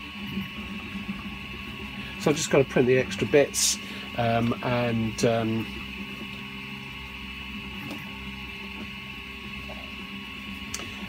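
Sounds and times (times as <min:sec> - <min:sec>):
steady hum of held tones: 0:00.0 - 0:11.0.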